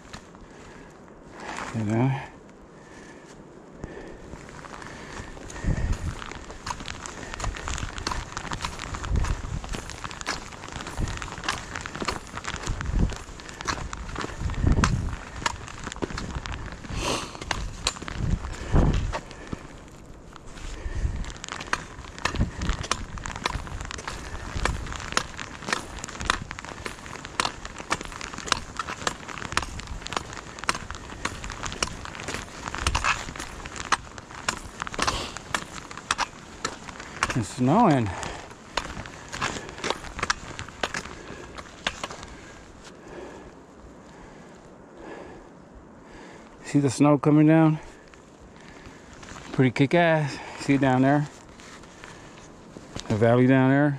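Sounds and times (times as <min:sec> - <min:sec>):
footsteps on trail: 0:00.0 - 0:53.9
trekking pole tips clicking: 0:04.4 - 0:43.2.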